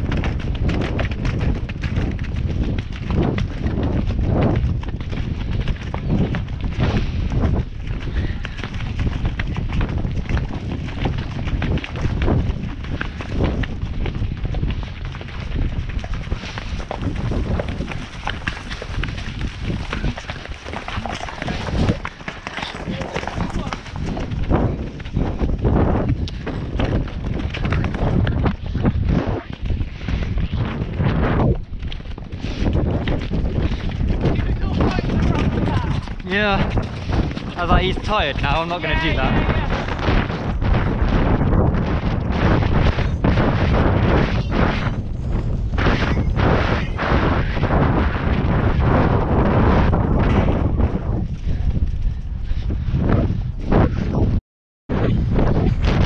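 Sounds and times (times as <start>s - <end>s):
horse tack rattling: 0.0s - 29.0s, 31.5s - 41.2s
horse hoofbeats on muddy ground: 0.0s - 52.4s
wind buffeting microphone: 0.0s - 56.0s
horse breathing: 6.7s - 9.3s, 16.0s - 30.6s, 36.2s - 37.9s.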